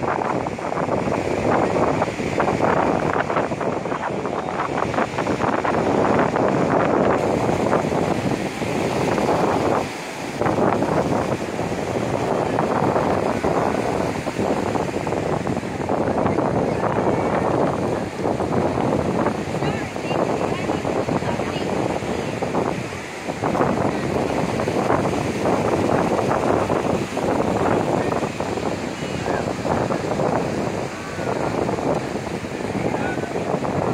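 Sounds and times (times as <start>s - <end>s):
ocean surf: 0.0s - 33.9s
wind buffeting microphone: 0.0s - 33.9s.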